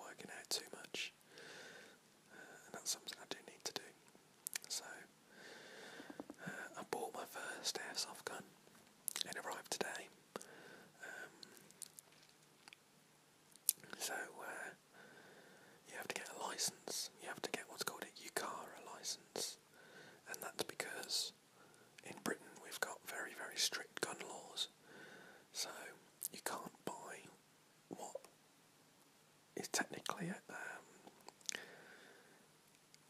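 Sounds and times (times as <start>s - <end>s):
man whispering: 0.0s - 1.2s, 2.3s - 5.1s, 6.0s - 8.5s, 9.1s - 11.9s, 13.7s - 14.8s, 15.8s - 21.4s, 22.0s - 24.8s, 25.5s - 28.4s, 29.6s - 31.6s.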